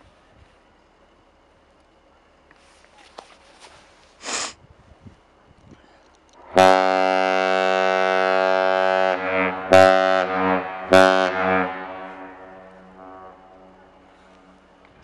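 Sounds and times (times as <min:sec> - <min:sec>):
deep ship's horn blasts: 0:06.4 - 0:14.9.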